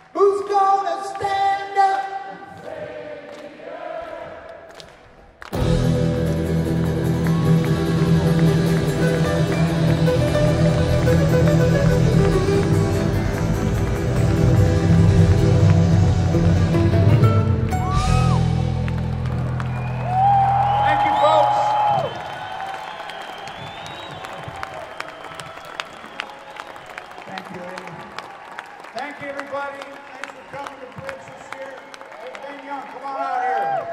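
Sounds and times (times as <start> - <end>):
audience applauding and cheering: 0.0 - 33.9.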